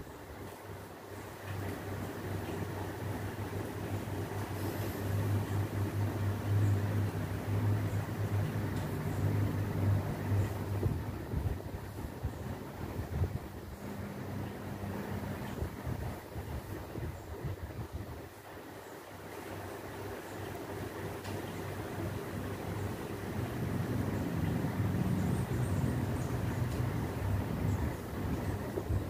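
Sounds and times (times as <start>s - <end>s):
steady hum: 0.0s - 29.0s
low background rumble: 20.6s - 29.0s.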